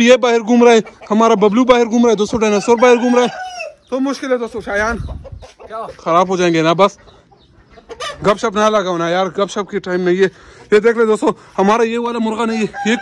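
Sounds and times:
chickens clucking: 0.0 - 13.0.

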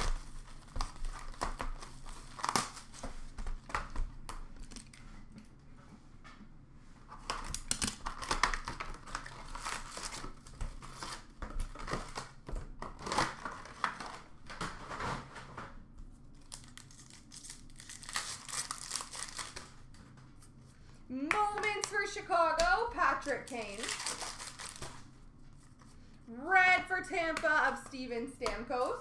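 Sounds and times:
foil wrappers tearing and crinkling: 0.0 - 3.3, 7.2 - 15.3, 16.3 - 19.9, 23.0 - 25.1
person calling out: 21.1 - 23.9, 26.3 - 29.0.

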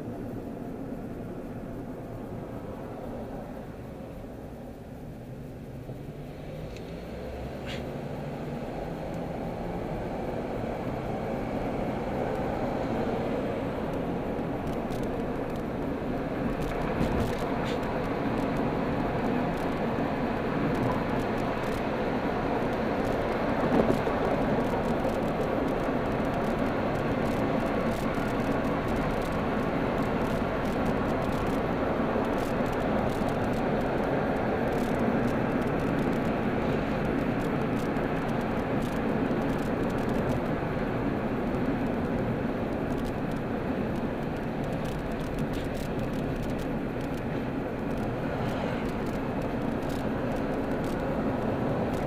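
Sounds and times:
car road and engine noise: 0.0 - 52.0.

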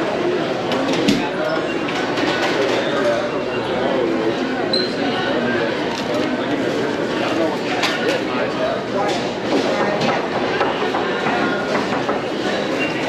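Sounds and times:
crowd babble: 0.0 - 13.0.

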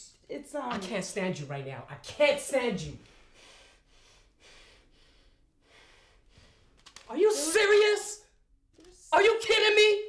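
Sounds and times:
soft breathing: 3.0 - 6.9.

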